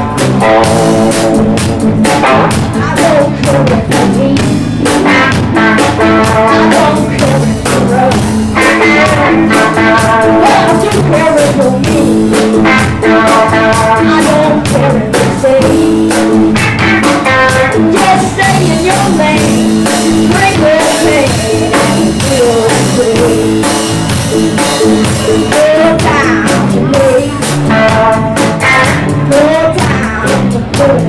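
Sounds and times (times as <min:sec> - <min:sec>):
live rock band playing: 0:00.0 - 0:31.0.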